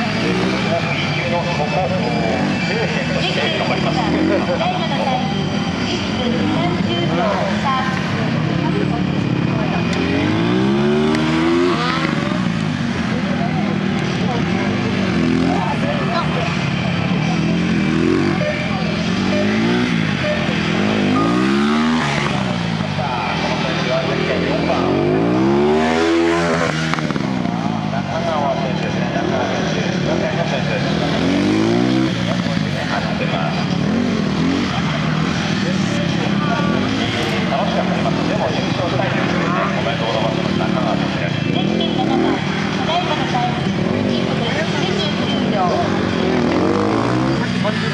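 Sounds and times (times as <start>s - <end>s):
motorcycle engine revving: 0.0s - 47.9s.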